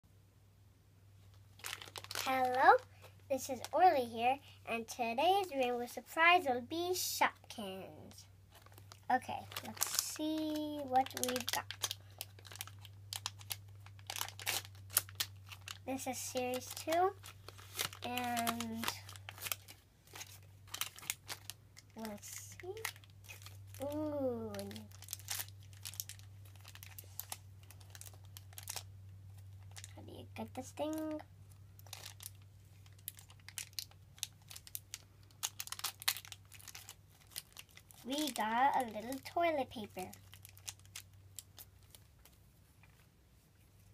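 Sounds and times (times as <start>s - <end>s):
foil packet crinkling: 1.3s - 3.8s, 8.5s - 43.0s.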